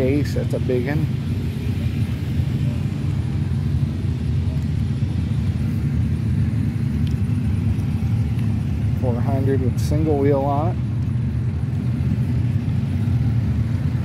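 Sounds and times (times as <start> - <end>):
steady low rumble: 0.0 - 14.0.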